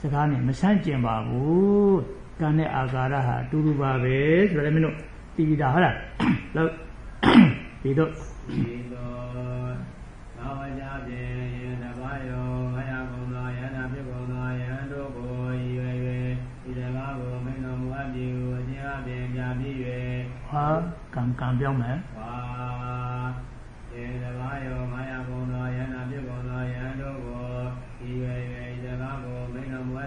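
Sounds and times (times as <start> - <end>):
monk chanting in monotone: 0.0 - 30.0.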